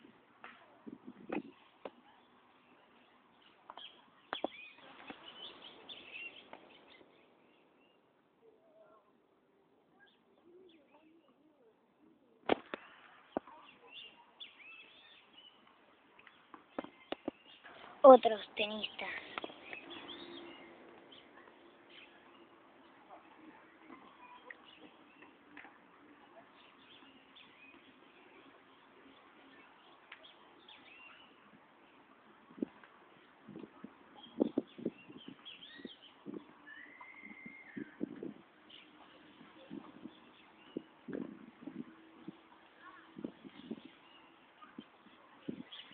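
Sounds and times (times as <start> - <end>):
birds chirping faintly: 1.4 - 9.2, 12.7 - 45.9.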